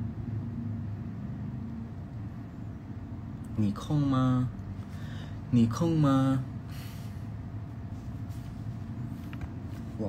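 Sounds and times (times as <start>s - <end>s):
low room noise rumble: 0.0s - 10.0s.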